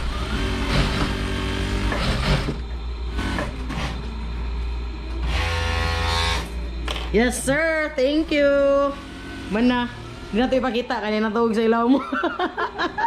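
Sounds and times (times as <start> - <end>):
sewing machine stitching: 0.0 - 3.9.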